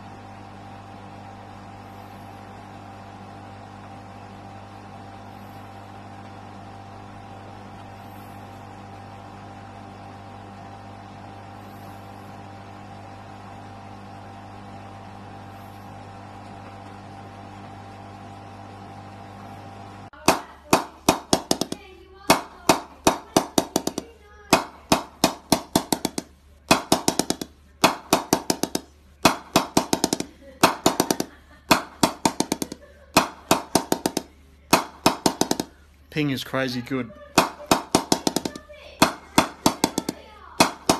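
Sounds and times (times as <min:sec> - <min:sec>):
mallet knocking on wooden bat: 0:20.3 - 0:35.7, 0:37.4 - 0:40.9.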